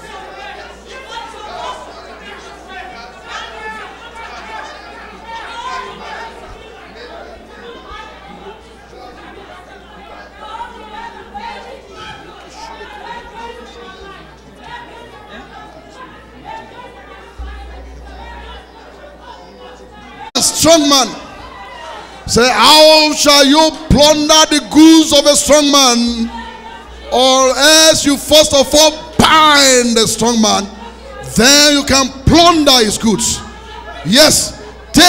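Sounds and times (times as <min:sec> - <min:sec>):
congregation praying aloud: 0:00.0 - 0:35.0.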